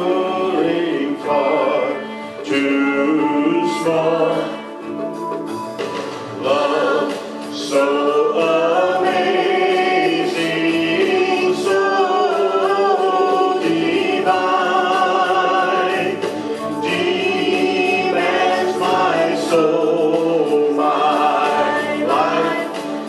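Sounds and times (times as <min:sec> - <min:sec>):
man and woman singing duet: 0:00.0 - 0:04.8, 0:06.4 - 0:23.0.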